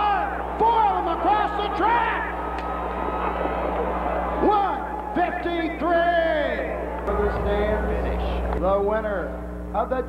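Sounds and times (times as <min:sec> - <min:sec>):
low hum: 0:01.7 - 0:10.0.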